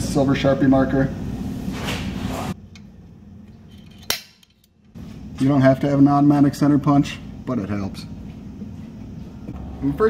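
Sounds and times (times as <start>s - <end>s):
low workshop hum: 0.0s - 10.0s.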